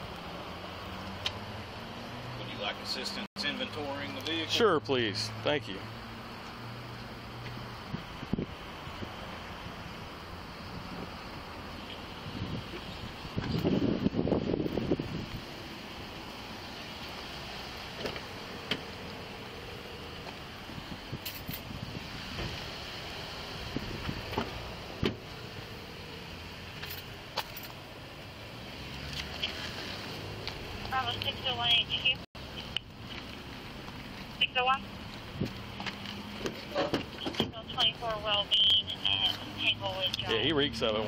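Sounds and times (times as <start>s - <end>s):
rubbing or wind on microphone: 11.9s - 15.5s.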